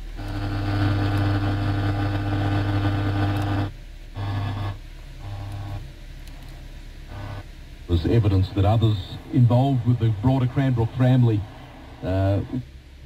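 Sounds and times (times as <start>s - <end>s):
radio static buzzing: 0.0s - 12.8s.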